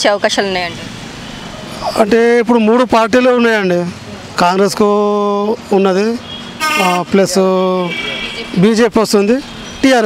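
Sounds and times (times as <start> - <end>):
street traffic: 0.0 - 10.0
man speaking: 1.6 - 10.0.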